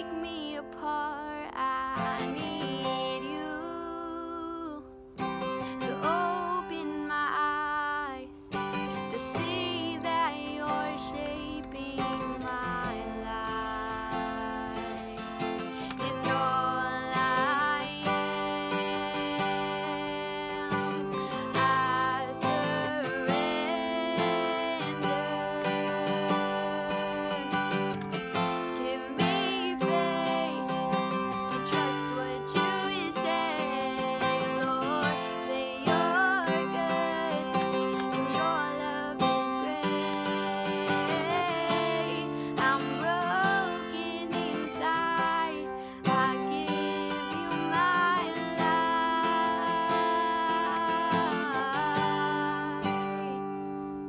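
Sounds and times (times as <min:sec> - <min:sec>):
strummed acoustic guitar: 0:00.0 - 0:54.0
woman singing: 0:00.0 - 0:54.0.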